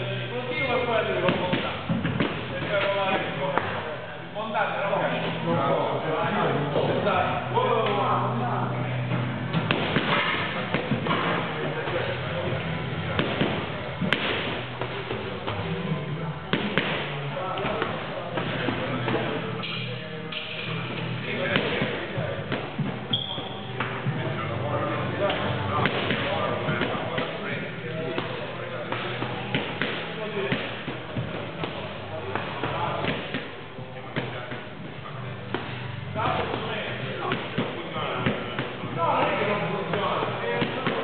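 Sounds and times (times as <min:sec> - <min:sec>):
background talk: 0:00.0 - 0:41.0
gym voices: 0:00.0 - 0:41.0.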